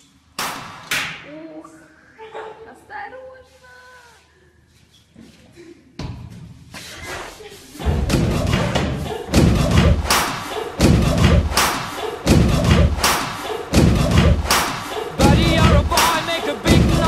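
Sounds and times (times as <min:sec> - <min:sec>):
heavy thumps with bright crack: 0:07.8 - 0:17.0.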